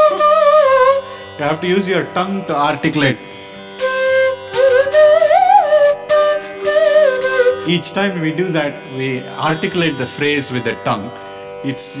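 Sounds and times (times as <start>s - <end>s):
sliding flute melody: 0.0s - 2.8s, 3.7s - 10.9s.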